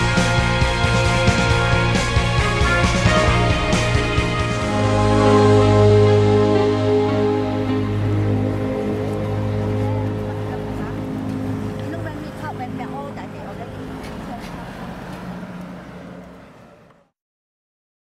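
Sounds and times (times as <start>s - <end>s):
music track: 0.0s - 14.0s
passing traffic: 0.0s - 17.2s
people's voices: 7.5s - 17.1s.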